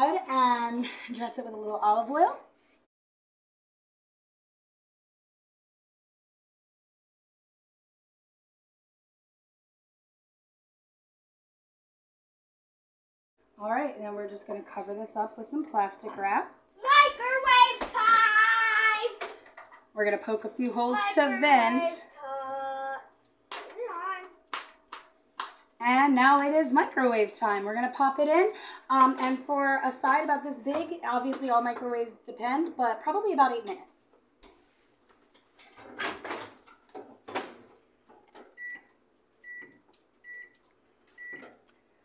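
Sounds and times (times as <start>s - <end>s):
microwave keypad beeps: 38.6s - 40.6s, 41.2s - 41.5s.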